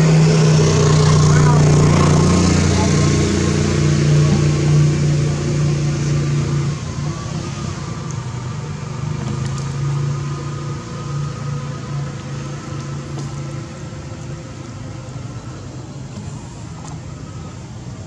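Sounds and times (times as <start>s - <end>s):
engine humming steadily: 0.0s - 18.0s.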